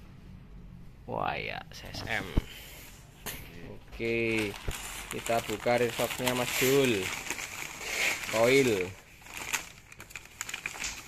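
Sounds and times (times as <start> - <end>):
paper and bubble wrap crinkling: 4.0 - 11.0
small crackles: 4.0 - 11.0.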